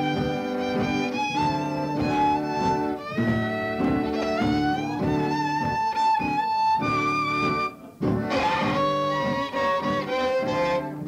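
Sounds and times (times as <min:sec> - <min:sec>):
fiddle tune on violin: 0:00.0 - 0:11.0
guitar accompaniment: 0:00.0 - 0:11.0.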